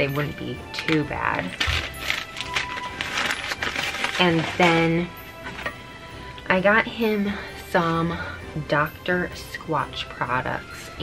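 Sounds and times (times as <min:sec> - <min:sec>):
plastic packaging crinkling: 0:00.8 - 0:05.7.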